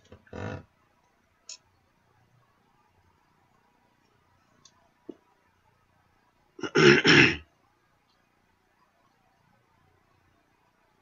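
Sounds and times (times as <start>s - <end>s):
man clearing his throat: 6.6s - 7.5s.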